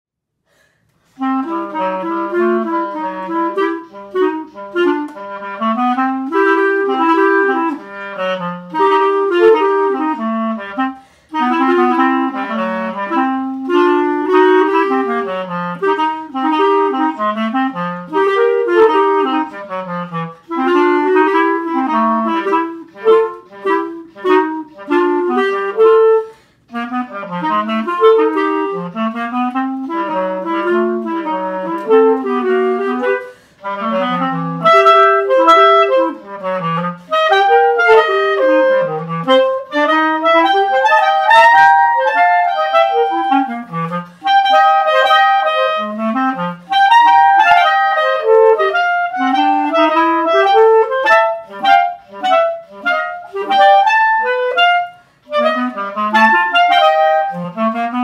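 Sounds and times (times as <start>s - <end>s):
clarinet duet playing jazz blues: 1.0s - 58.0s.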